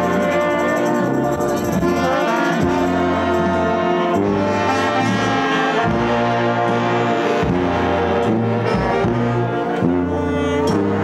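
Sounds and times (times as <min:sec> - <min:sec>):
brass band music: 0:00.0 - 0:11.0
low bass line: 0:00.0 - 0:11.0
trombones holding notes: 0:00.0 - 0:11.0.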